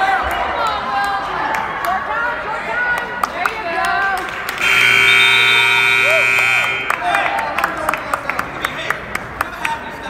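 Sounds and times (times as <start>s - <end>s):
crowd voices: 0.0s - 10.0s
scoreboard buzzer: 4.6s - 7.0s.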